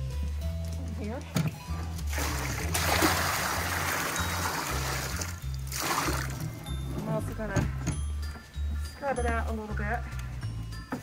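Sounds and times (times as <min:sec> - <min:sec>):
background music with bass: 0:00.0 - 0:11.0
water pouring into a tub: 0:02.1 - 0:06.6.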